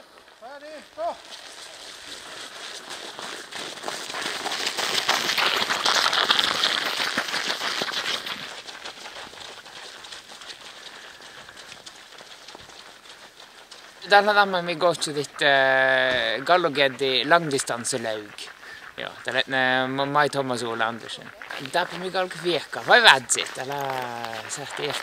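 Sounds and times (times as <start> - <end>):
footsteps crunching on snow: 0.0 - 25.0.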